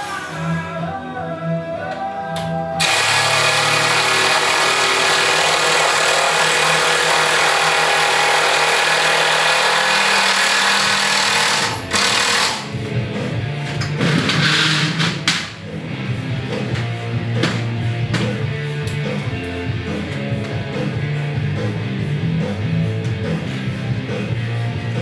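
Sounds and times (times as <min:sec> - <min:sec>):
power tool running: 0:02.8 - 0:12.8, 0:14.0 - 0:15.2
rock music from radio: 0:11.5 - 0:25.0.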